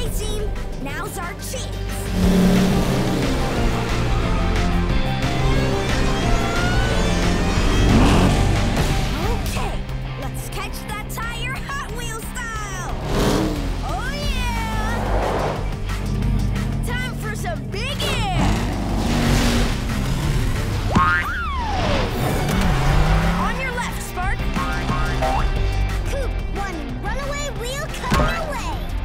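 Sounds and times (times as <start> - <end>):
cartoon background music: 0.0 - 29.0.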